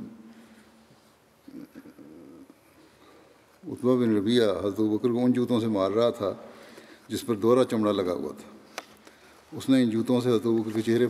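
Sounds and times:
man's low rough throat sound: 1.4 - 2.8.

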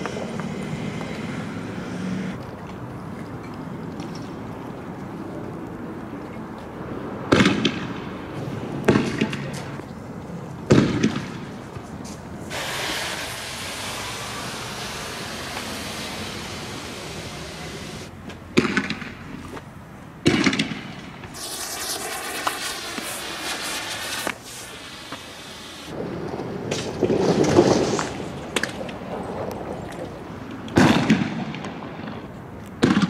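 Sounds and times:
gas canister hissing: 12.5 - 18.1, 21.4 - 26.0
sharp gunshot bangs with echo: 30.8 - 31.7.

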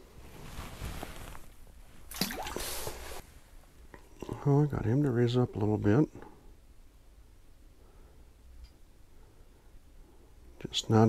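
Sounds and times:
fish splashing into water: 2.1 - 3.0.

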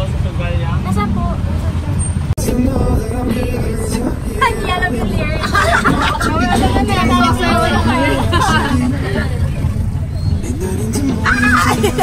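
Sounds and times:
vehicle rumbling in motion: 0.0 - 12.0
voices talking: 0.0 - 12.0.

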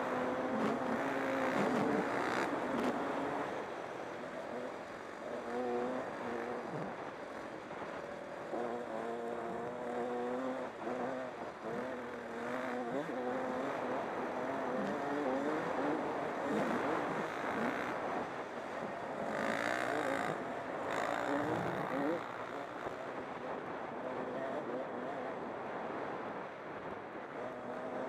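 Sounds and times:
dirt bike engines revving: 0.0 - 25.5.

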